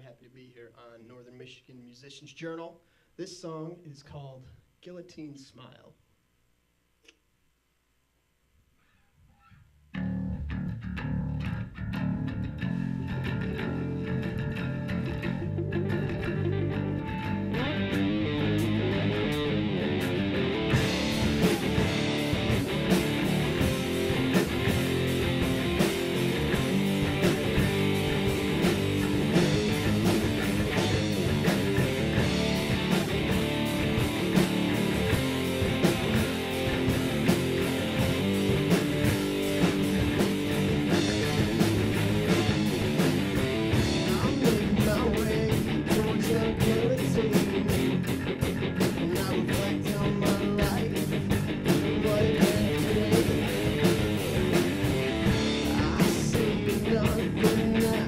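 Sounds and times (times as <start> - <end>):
electric bass: 9.9 - 58.0
electric guitar: 10.0 - 58.0
drum kit with cymbals: 20.0 - 58.0.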